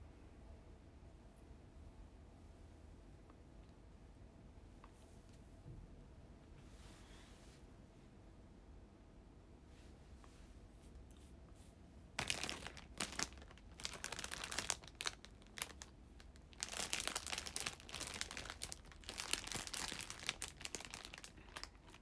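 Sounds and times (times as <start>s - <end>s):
plastic packaging crinkling: 12.2s - 22.0s.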